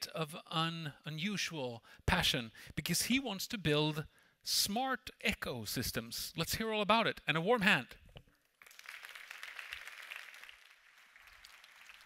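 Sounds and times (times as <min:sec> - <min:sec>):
audience applauding: 0:08.6 - 0:12.0.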